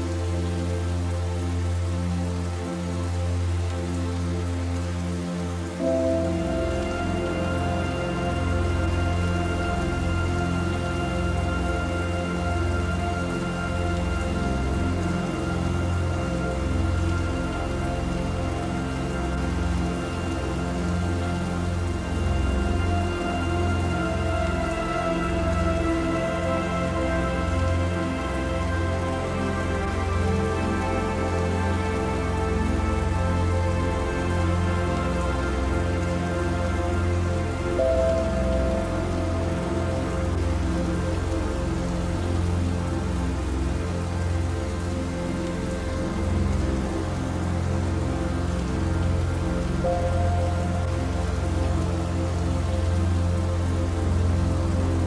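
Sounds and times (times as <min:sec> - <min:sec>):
soft slow music: 0:00.0 - 0:55.0
steady rain falling: 0:00.0 - 0:55.0.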